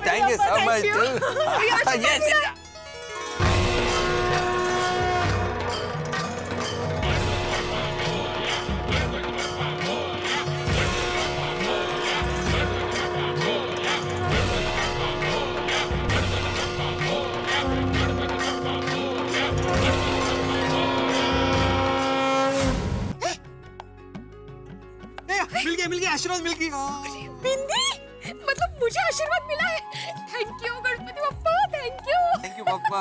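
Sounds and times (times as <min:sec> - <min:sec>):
held drone note: 0:03.4 - 0:22.5
voices chanting: 0:08.4 - 0:21.8.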